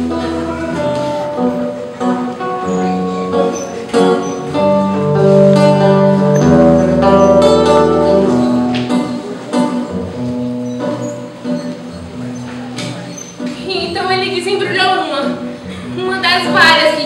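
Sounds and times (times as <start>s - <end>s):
guitar playing slow chords: 0.0s - 16.7s.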